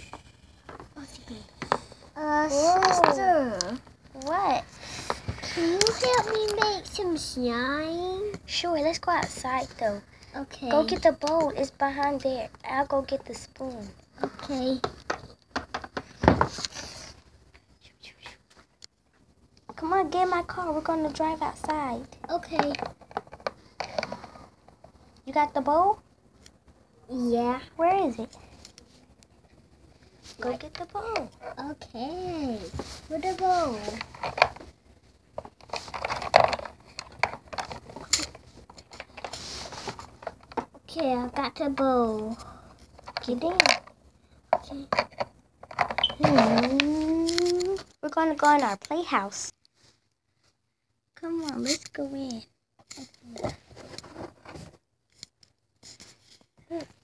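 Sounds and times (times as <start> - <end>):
knocks and rustles of movement: 0.0 - 17.7, 18.4 - 50.6, 51.2 - 57.0.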